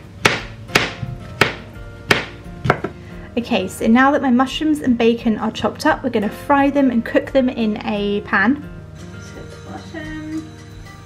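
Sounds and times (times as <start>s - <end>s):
knife chopping on plastic board: 0.0s - 3.0s
background music: 0.0s - 11.0s.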